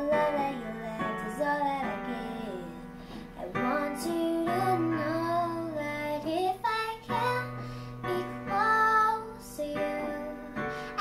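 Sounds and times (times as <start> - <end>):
electronic keyboard chord: 0.0 - 11.0
girl singing pop ballad: 0.0 - 11.0.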